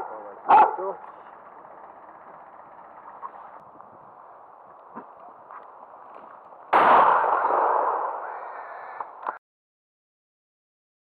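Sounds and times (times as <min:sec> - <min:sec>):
dog barking: 0:00.0 - 0:01.1
low background noise: 0:00.0 - 0:09.4.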